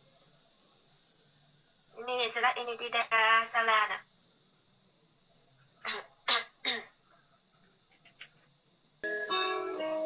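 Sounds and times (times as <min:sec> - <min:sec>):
person coughing: 0:05.8 - 0:06.9.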